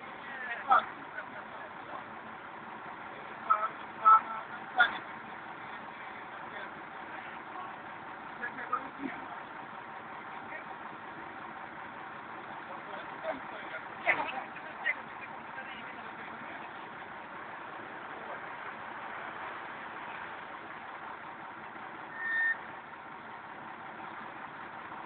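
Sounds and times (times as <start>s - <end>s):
distant voices: 0.0s - 25.0s
street noise: 0.0s - 25.0s
vehicle engine: 0.0s - 25.0s.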